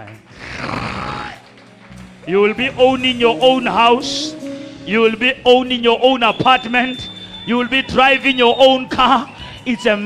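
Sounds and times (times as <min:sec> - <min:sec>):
soft backing music: 0:00.0 - 0:10.0.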